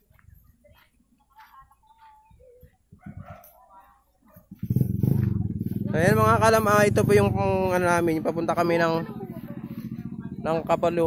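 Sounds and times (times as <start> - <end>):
faint voices: 0.0 - 11.0
motorcycle engine running: 4.3 - 11.0.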